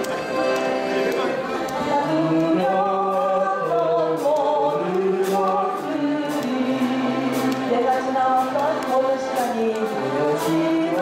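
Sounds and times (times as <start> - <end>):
accordion ensemble playing chords: 0.0 - 11.0
woman singing with vibrato: 1.7 - 11.0.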